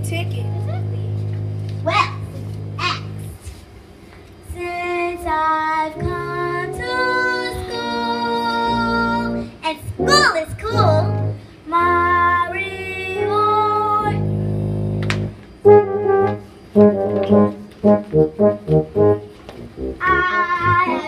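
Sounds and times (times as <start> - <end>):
instrumental backing: 0.0 - 3.7, 4.5 - 21.0
girl singing: 4.4 - 14.2, 20.0 - 21.0.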